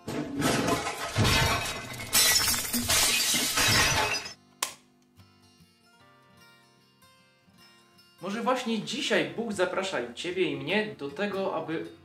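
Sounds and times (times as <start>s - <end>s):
crash of things falling and breaking: 0.0s - 4.4s.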